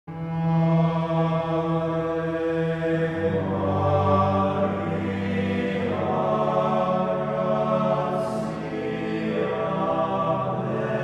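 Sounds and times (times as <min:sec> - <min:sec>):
slow sung chant: 0:00.2 - 0:11.0.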